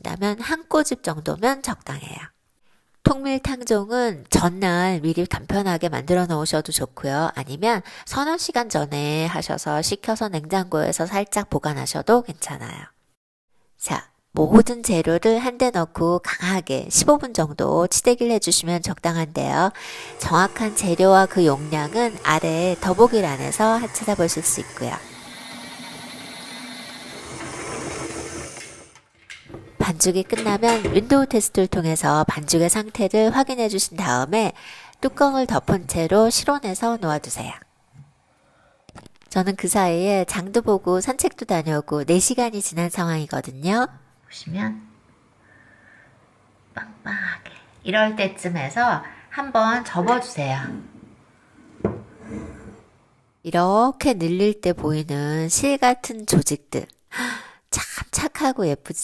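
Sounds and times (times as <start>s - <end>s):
stand mixer kneading dough: 20.1s - 26.1s.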